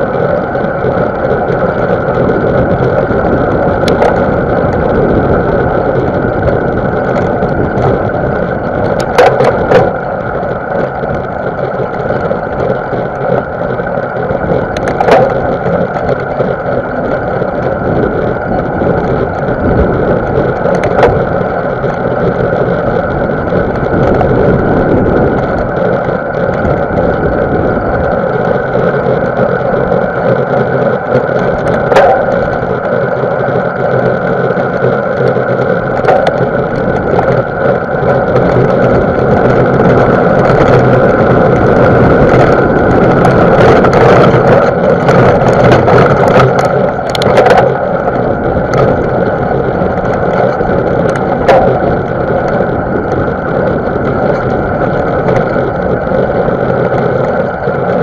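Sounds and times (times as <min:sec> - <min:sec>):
bike tyres on dirt trail: 0:00.0 - 0:58.0.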